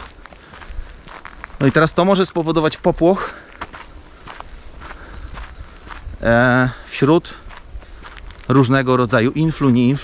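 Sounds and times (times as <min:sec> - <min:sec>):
footsteps on dirt track: 0:00.0 - 0:10.0.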